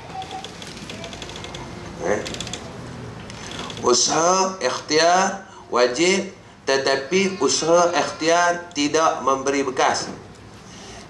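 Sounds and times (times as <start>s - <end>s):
faint rapid clicking: 0.1s - 2.7s.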